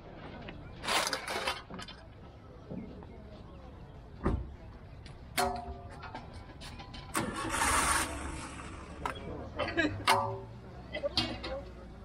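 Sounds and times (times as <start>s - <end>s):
rush of engine noise: 7.2s - 9.4s.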